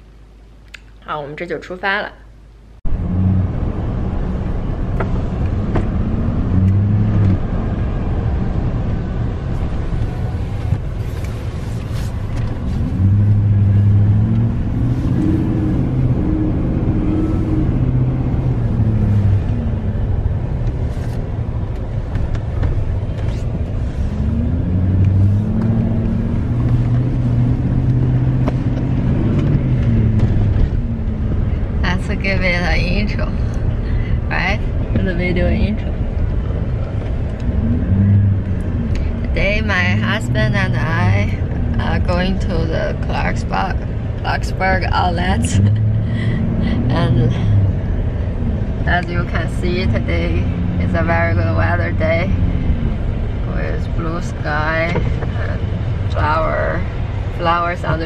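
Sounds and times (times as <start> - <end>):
road rumble inside car: 2.6 - 58.0
car engine revving: 2.9 - 58.0.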